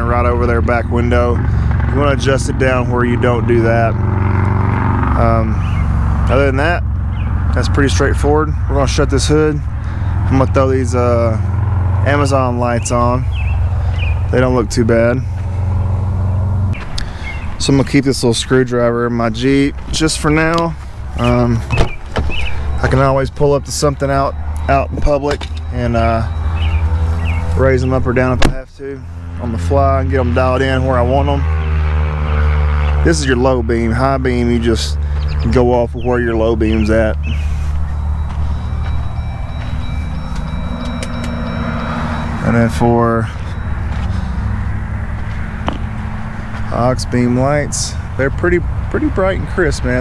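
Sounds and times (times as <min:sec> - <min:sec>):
car engine idling: 0:05.2 - 0:50.0.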